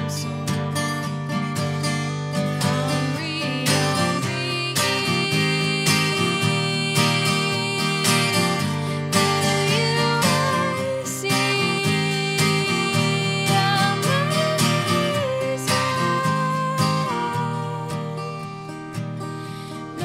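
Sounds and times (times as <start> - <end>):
woman singing: 0.0 - 1.4, 2.3 - 20.0
acoustic guitar strummed: 0.0 - 20.0.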